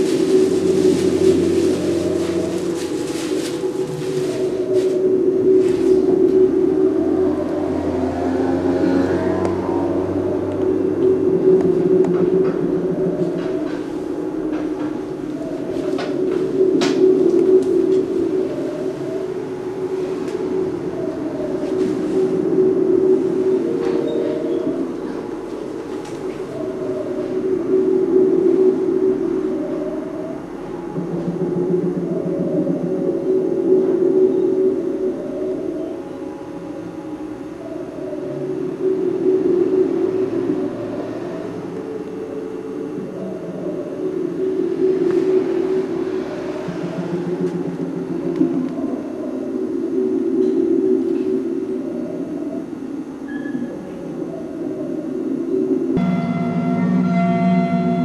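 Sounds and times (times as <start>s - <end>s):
low musical drone: 0.0s - 58.0s.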